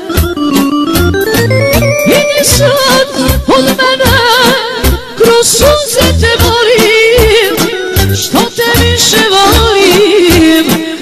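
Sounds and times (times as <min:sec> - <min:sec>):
steady bass beat: 0:00.0 - 0:04.2.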